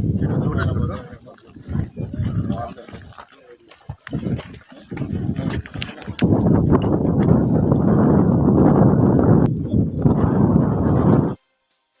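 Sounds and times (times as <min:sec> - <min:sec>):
voices talking: 0:00.0 - 0:11.4
footsteps crunching on stones: 0:01.0 - 0:07.4.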